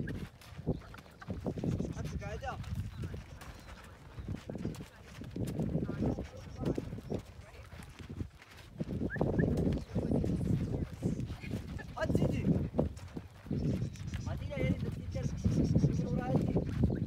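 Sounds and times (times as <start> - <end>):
camel footfalls on stony track: 0.0 - 17.0.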